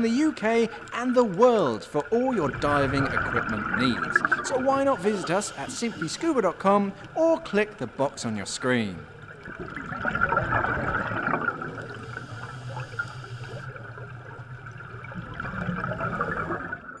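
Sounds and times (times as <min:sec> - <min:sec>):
air bubbles rising underwater: 0:00.0 - 0:06.2, 0:09.0 - 0:17.0.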